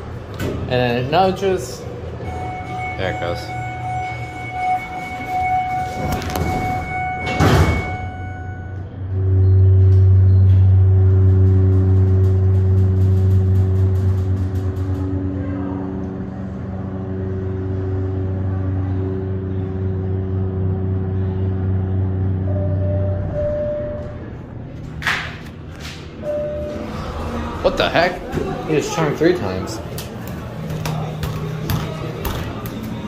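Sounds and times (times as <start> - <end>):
elevator pump motor humming: 1.8 - 33.0.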